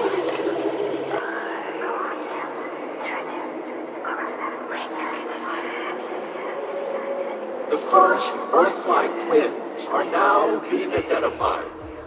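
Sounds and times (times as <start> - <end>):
indistinct voice fragments: 0.0 - 12.0
low electronic drone: 0.0 - 12.0.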